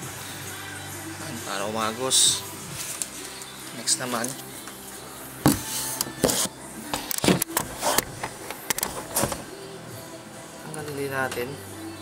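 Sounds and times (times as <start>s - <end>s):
handling knocks and rubs on phone: 5.5s - 6.5s.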